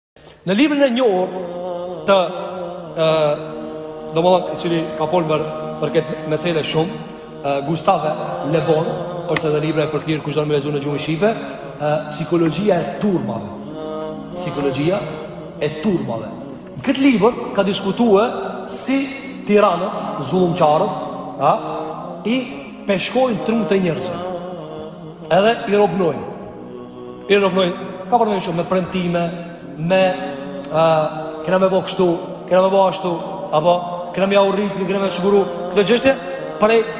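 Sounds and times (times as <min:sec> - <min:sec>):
man lecturing: 0:00.2 - 0:24.5, 0:25.2 - 0:26.4, 0:27.2 - 0:36.9
man chanting: 0:00.4 - 0:36.9.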